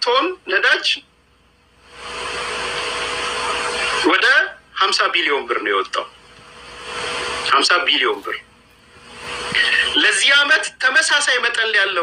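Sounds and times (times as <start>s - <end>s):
steady hiss: 1.8s - 4.1s, 5.9s - 10.6s.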